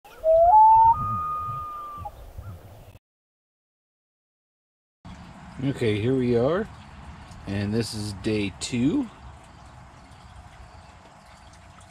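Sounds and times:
rising whistle-like call: 0:00.1 - 0:02.2.

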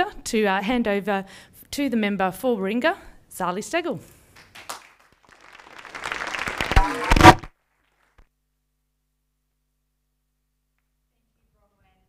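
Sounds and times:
audience applauding: 0:04.4 - 0:07.5
loud thumps: 0:06.6 - 0:07.5.

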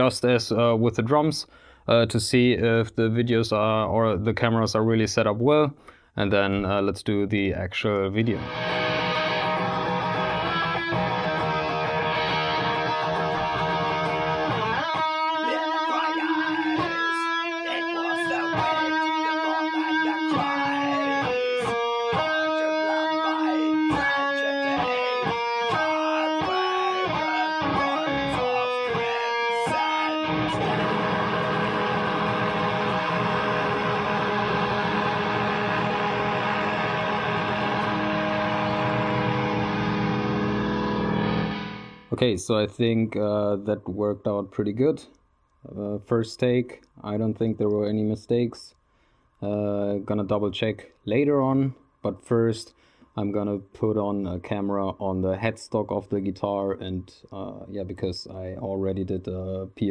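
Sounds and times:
distorted electric guitar: 0:08.3 - 0:42.1.

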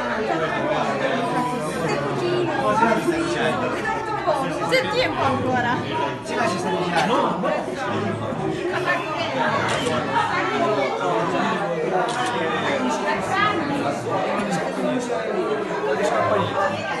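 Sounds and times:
overlapping chatter of voices: 0:00.0 - 0:17.0.

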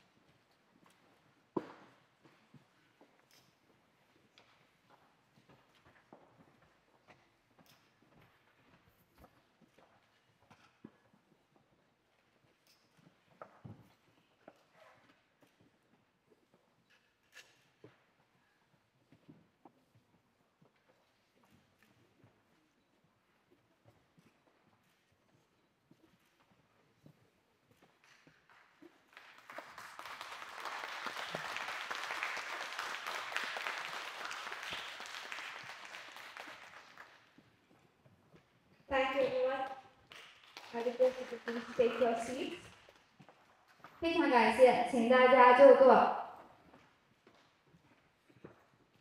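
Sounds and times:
audience applauding: 0:29.1 - 0:37.3, 0:40.1 - 0:42.5.

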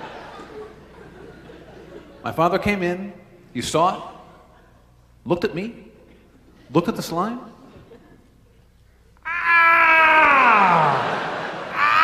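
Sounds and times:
man wailing into a microphone: 0:09.2 - 0:12.0.

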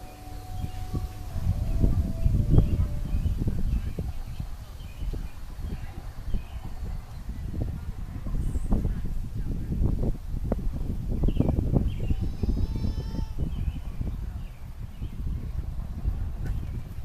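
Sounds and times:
birds chirping: 0:00.0 - 0:17.0
wind rumble on microphone: 0:00.0 - 0:17.0.

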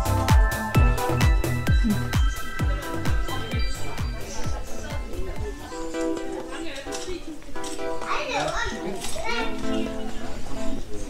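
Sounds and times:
background music: 0:00.0 - 0:11.0
child speaking: 0:08.0 - 0:09.9.

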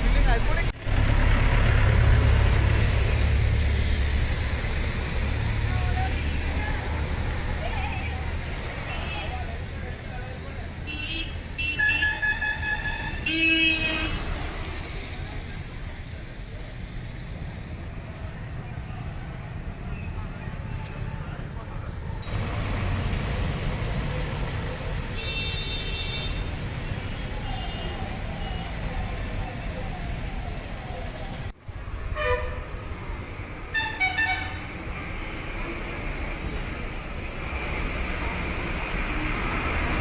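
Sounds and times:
car passing: 0:00.0 - 0:09.0
low rumble of road traffic: 0:00.0 - 0:40.0
vehicle horn toots: 0:32.2 - 0:32.6.

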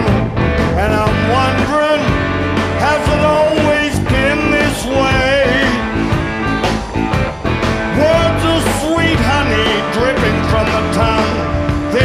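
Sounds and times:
bending lead guitar line: 0:00.0 - 0:12.0
live rock band playing: 0:00.0 - 0:12.0.

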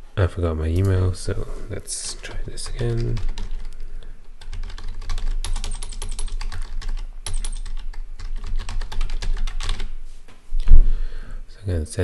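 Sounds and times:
typing on computer keyboard: 0:02.6 - 0:03.8, 0:04.4 - 0:09.9.

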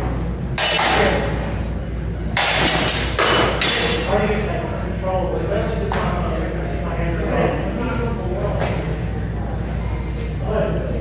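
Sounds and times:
swords clashing: 0:00.6 - 0:01.4, 0:02.4 - 0:04.2.

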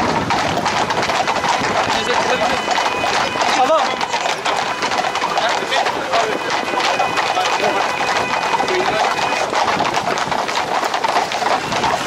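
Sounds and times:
horse hooves on paved road: 0:00.0 - 0:12.0
crowd talking and calling: 0:00.1 - 0:12.0.

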